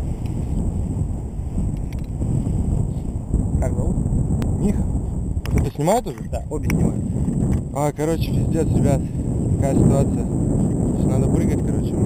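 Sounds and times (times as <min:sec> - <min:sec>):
wind buffeting microphone: 0:00.0 - 0:12.0.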